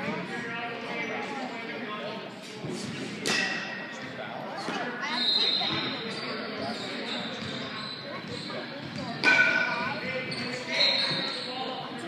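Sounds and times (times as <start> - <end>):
indistinct voices in echoing hall: 0.0 - 12.0.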